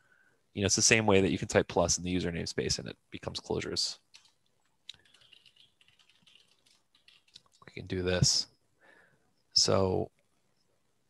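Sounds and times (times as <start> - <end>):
faint keyboard typing: 4.0 - 7.9.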